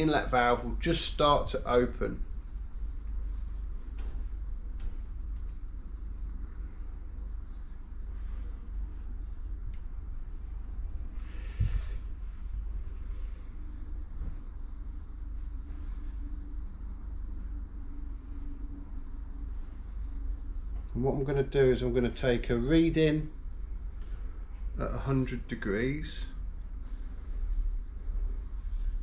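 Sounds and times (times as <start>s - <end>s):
low workshop room rumble: 0.0s - 29.0s.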